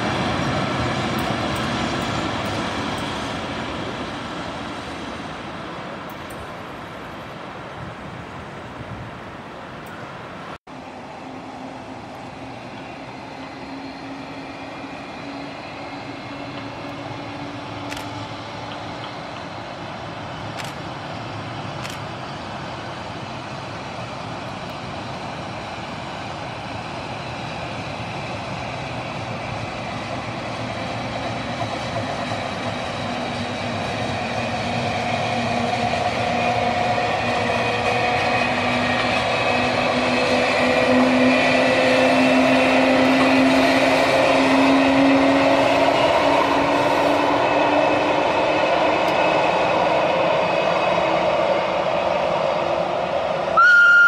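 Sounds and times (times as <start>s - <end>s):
electric train passing: 0.0s - 54.0s
loud steady high tone: 53.6s - 54.0s.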